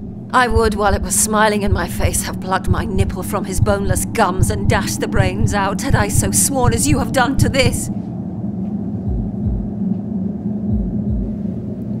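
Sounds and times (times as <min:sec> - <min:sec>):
low dark drone: 0:00.0 - 0:12.0
deep double thuds: 0:09.1 - 0:09.7, 0:10.7 - 0:11.4.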